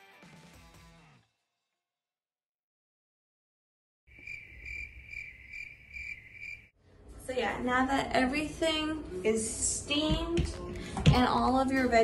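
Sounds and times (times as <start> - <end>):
cricket chirping: 4.1 - 6.7.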